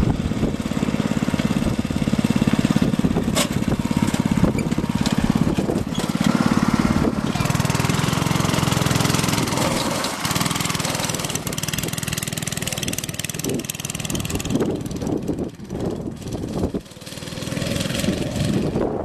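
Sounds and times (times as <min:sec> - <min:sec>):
go-kart engine puttering: 0:00.0 - 0:18.9.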